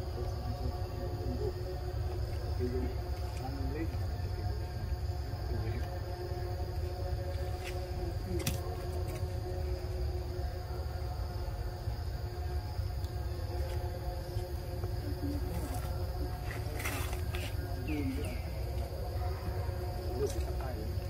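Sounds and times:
constant low rumble: 0.0s - 21.0s
insects droning: 0.0s - 21.0s.

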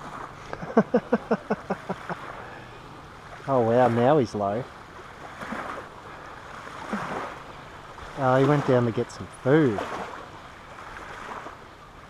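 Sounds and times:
man chuckling softly: 0.4s - 2.7s.

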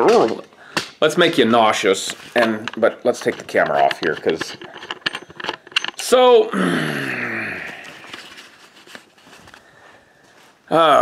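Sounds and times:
man clearing his throat: 6.5s - 7.8s.

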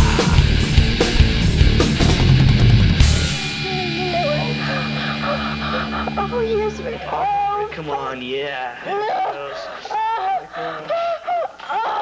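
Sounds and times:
heavy distorted metal band: 0.0s - 8.3s
ringing guitar chord: 0.5s - 8.5s
person talking: 3.4s - 11.0s.

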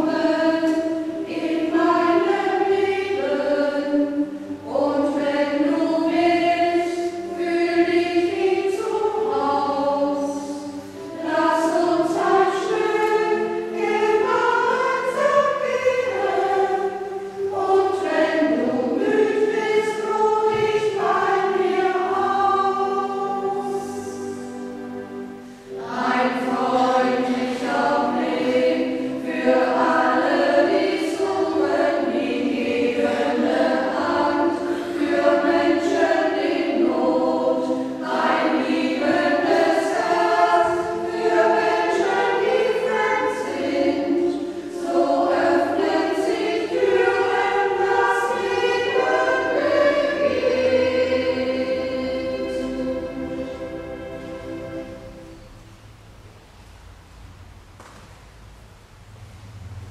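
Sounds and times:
choir singing sacred song: 0.0s - 56.2s.

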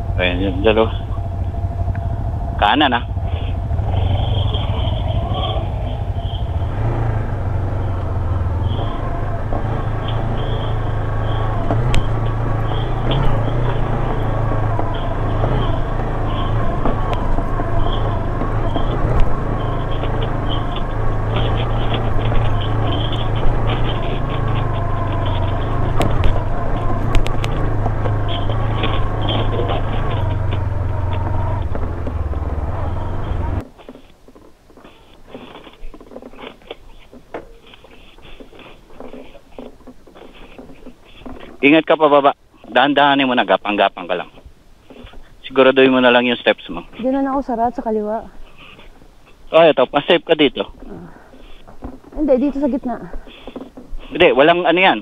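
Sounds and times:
motorcycle engine at low revs: 0.0s - 55.0s
tyre and chassis noise: 0.0s - 55.0s
sharp knocks from bumps: 3.4s - 41.9s, 48.5s - 55.0s.

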